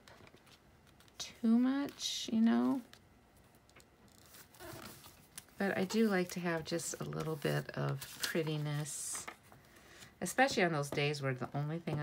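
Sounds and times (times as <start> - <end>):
paper rustling: 4.1 - 9.2.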